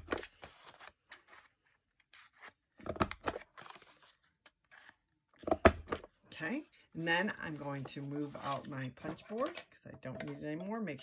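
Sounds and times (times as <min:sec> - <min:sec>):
paper rustling: 0:07.0 - 0:09.5.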